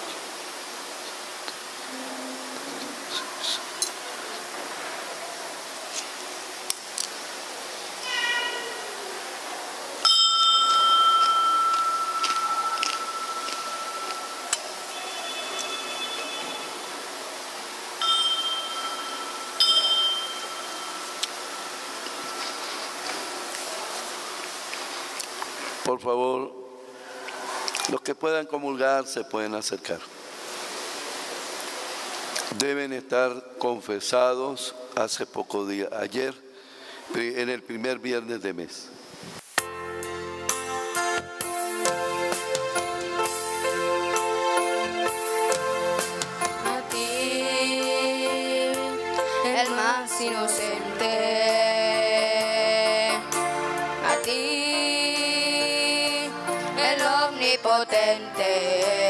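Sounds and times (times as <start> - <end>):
steady high-pitched hiss: 0.0 - 59.0
altar bell ringing: 10.0 - 16.9, 18.0 - 23.2.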